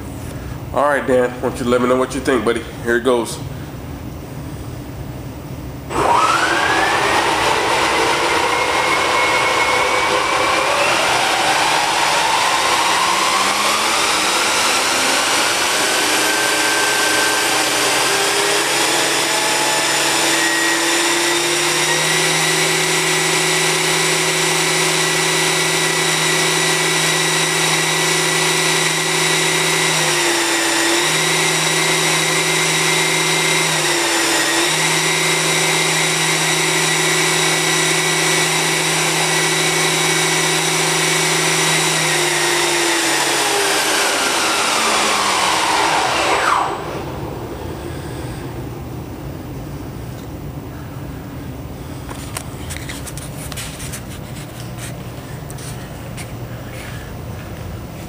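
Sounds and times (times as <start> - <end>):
model helicopter motor whine: 5.9 - 48.7
rotor whirr: 5.9 - 49.4.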